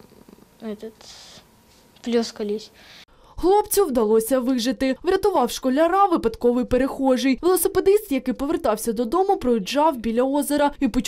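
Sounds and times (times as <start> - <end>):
boy speaking: 0.6 - 1.4, 2.0 - 2.8.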